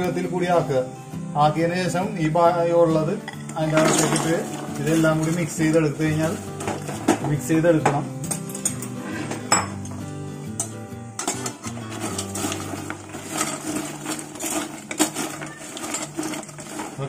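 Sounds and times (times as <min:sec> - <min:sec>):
background music low notes: 0:00.0 - 0:17.0
utensils clinking against dish: 0:03.2 - 0:05.9, 0:06.6 - 0:17.0.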